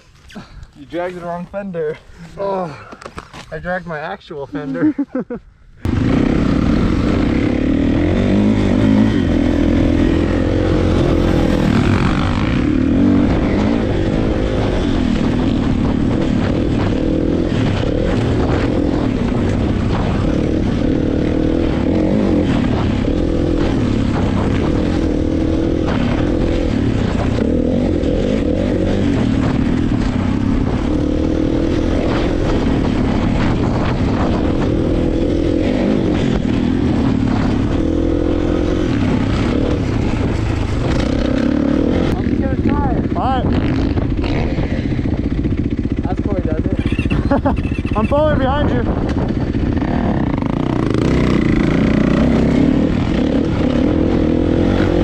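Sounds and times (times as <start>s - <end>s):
dirt bike engine revving: 5.8s - 55.0s.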